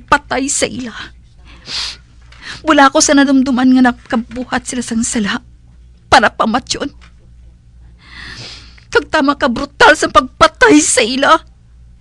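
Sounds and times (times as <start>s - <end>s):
faint low hum: 0.0s - 12.0s
person breathing out: 8.0s - 8.8s.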